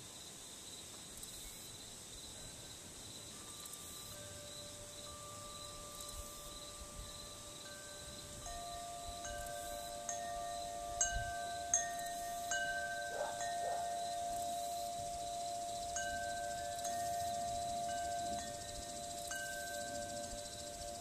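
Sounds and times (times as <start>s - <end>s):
wind chimes ringing: 2.4s - 21.0s.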